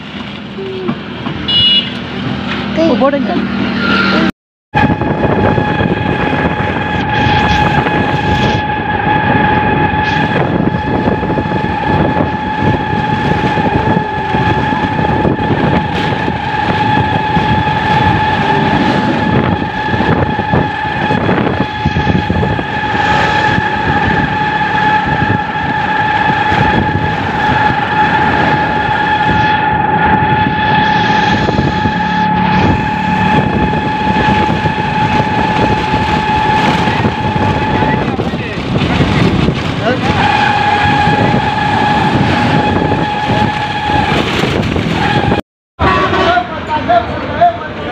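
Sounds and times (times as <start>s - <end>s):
road and wind noise: 0.0s - 47.9s.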